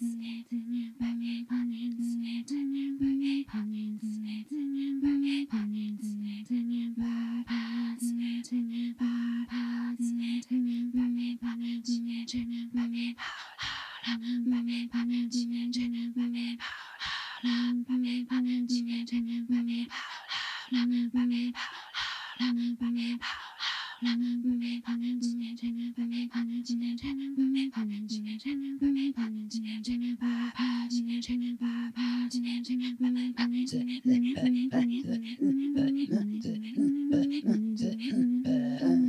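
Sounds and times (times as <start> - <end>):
women throat singing: 0.0 - 39.0.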